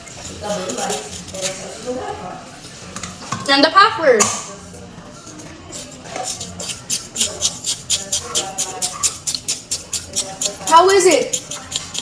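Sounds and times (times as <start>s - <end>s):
plastic spoon scraping shaved ice: 0.0s - 2.1s, 5.2s - 12.0s.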